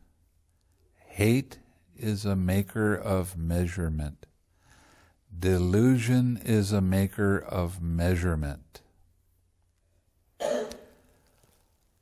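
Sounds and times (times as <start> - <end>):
man clearing throat: 10.4 - 11.0.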